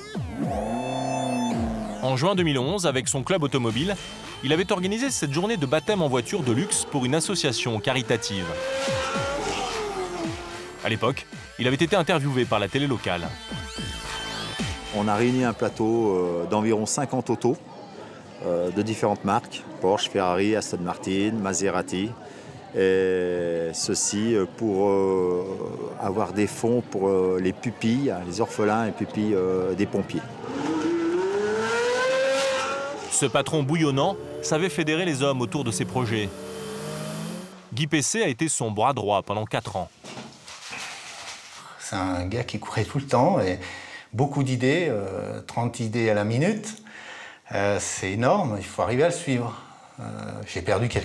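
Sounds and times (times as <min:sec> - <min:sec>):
car engine driving past: 0:06.4 - 0:10.8, 0:30.3 - 0:37.7.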